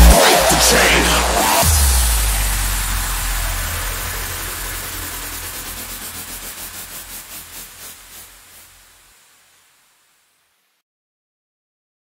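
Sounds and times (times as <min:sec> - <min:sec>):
low bass drone: 0:00.0 - 0:09.0
hissing noise wash: 0:00.0 - 0:10.8
pulsing flutter: 0:02.4 - 0:09.0.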